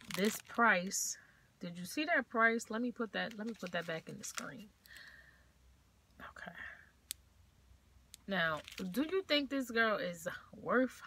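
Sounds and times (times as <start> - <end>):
low room hum: 0.0 - 11.0
soft whisper: 6.1 - 7.0.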